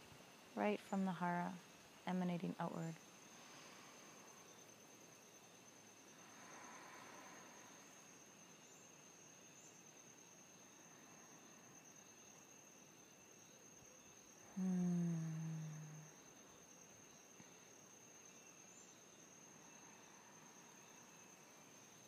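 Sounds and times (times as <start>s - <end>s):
insects trilling: 0.0s - 22.0s
woman humming: 14.5s - 16.2s.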